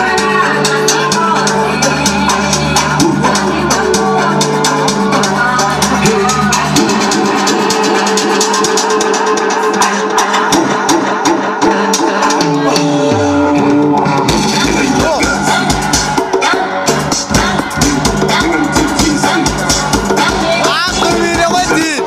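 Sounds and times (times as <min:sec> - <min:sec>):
dance music with steady beat: 0:00.0 - 0:22.0.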